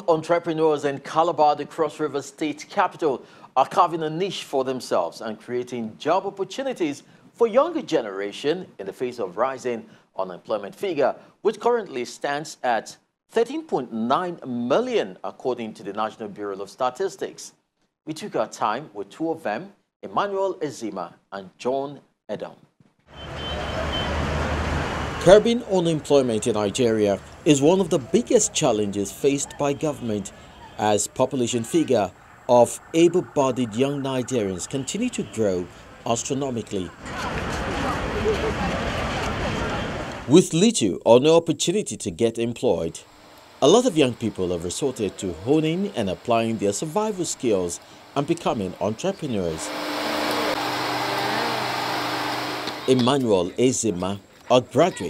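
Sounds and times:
general outdoor noise: 18.1 - 55.0
road traffic rumble: 23.1 - 40.4, 43.0 - 54.5
man speaking: 25.2 - 37.0, 40.3 - 49.7, 52.8 - 55.0
small motor whirring: 49.6 - 52.9.

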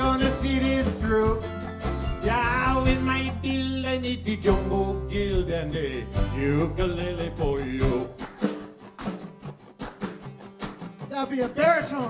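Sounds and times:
person singing: 0.0 - 1.5, 2.2 - 8.6
strummed guitar chords: 0.0 - 12.0.

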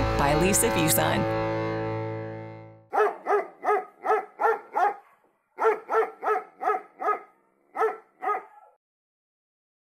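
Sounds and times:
dog barking: 2.9 - 8.8.

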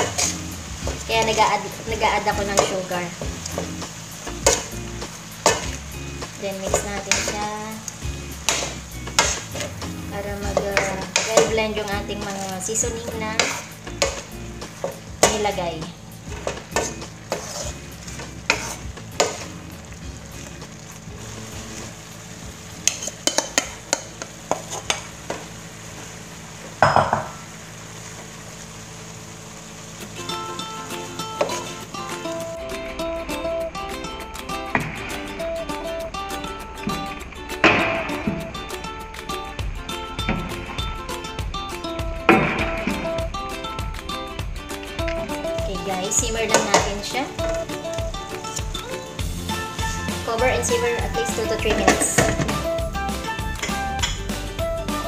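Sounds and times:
spatula scraping a wok: 0.0 - 1.4, 6.7 - 15.6, 16.2 - 25.1
background music: 0.0 - 24.3, 30.2 - 55.0
faint sizzle: 0.0 - 55.0.

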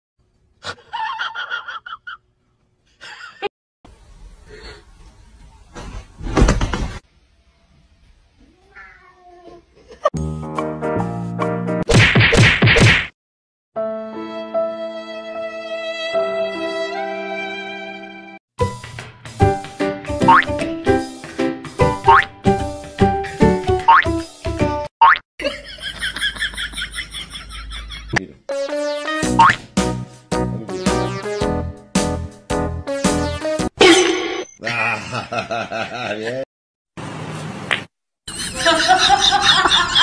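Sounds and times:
cat meowing: 8.7 - 9.3
cartoon boing sound effect: 20.3 - 20.5, 29.4 - 29.6.

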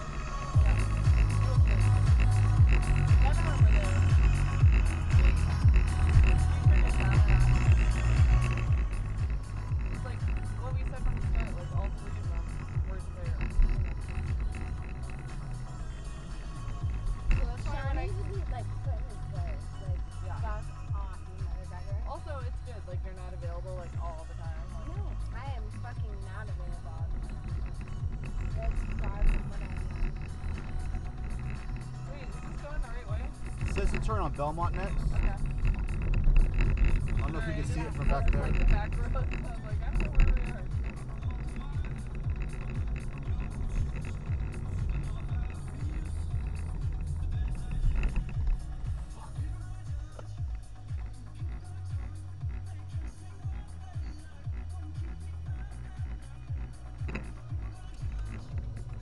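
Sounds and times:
music with pulsing bass beat: 0.0 - 59.0.

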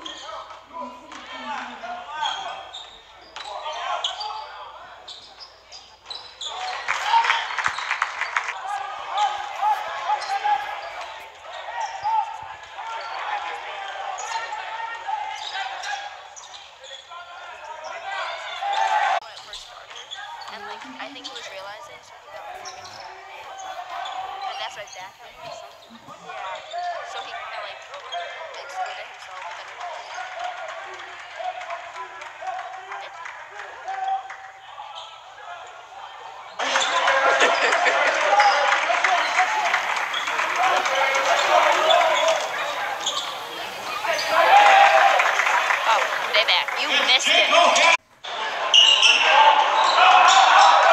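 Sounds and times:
crowd voices din: 0.0 - 50.9.

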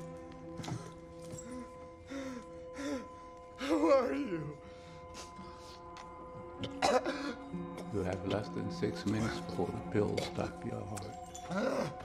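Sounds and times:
man coughing harshly: 6.8 - 7.4.

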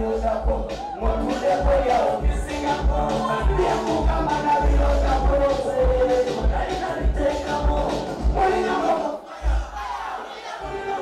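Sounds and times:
deep bass hits: 0.0 - 8.5
crowd shouting and cheering: 0.0 - 11.0.

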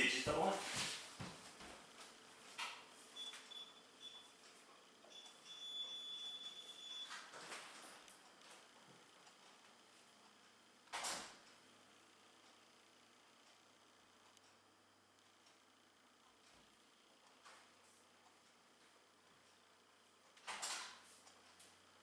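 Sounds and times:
faint high whine: 0.0 - 10.3.

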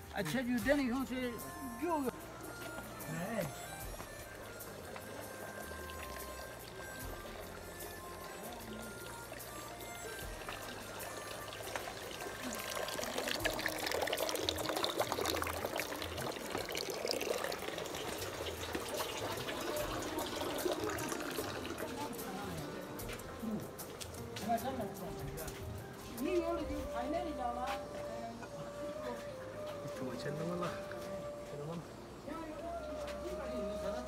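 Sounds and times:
running water trickling: 0.0 - 34.0.

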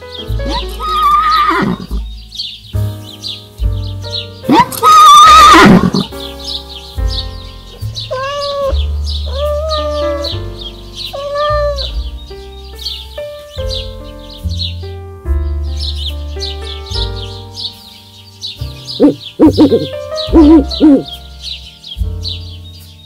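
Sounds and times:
background music: 0.0 - 23.0
horse whinnying: 0.4 - 2.0, 4.5 - 6.1, 8.1 - 10.4, 11.2 - 11.9
short animal calls: 8.1 - 10.4, 11.2 - 11.9, 19.0 - 21.0.

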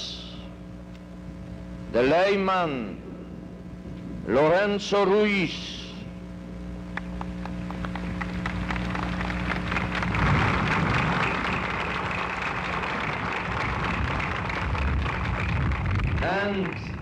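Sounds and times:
steady recording hum: 0.0 - 17.0
crowd applauding: 7.0 - 17.0.

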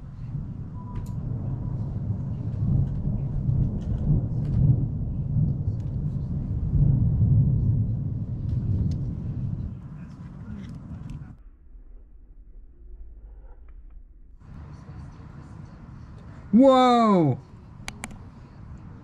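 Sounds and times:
deep rumble of thunder: 0.0 - 11.3.

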